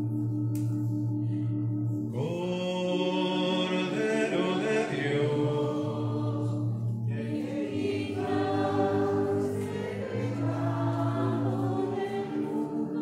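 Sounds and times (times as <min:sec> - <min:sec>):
choir singing a hymn: 0:02.2 - 0:13.0.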